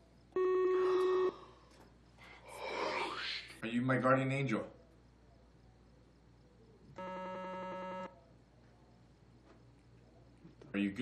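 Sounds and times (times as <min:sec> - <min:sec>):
buzzy electronic toy beep: 0:00.4 - 0:01.3, 0:07.0 - 0:08.2.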